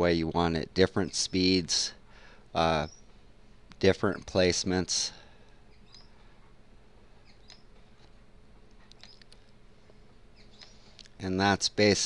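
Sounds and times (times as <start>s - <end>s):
faint steady hiss: 0.0s - 12.0s
small high chirps: 5.6s - 6.2s, 7.2s - 8.1s, 8.7s - 9.5s, 10.3s - 11.1s
faint short clicks: 7.4s - 9.5s, 10.6s - 11.2s.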